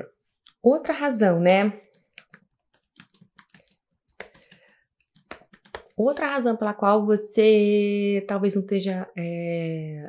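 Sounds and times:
typing on computer keyboard: 1.8s - 6.0s.

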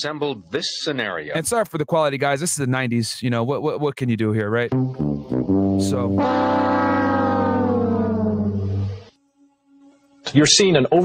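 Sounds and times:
held synthesizer chord: 4.7s - 9.1s.

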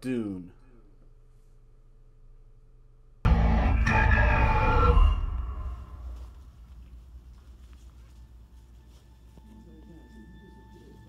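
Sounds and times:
sustained high tones: 3.3s - 6.6s
deep rumble: 3.3s - 7.6s.

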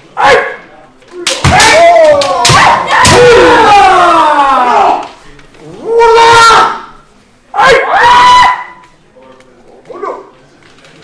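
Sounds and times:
kiai shouts: 0.2s - 5.1s, 5.8s - 8.8s.

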